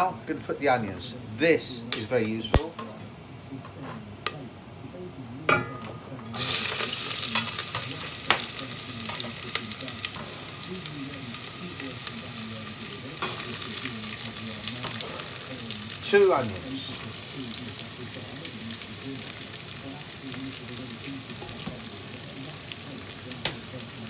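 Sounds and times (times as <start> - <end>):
onions sizzling in a pan: 1.1 - 24.0.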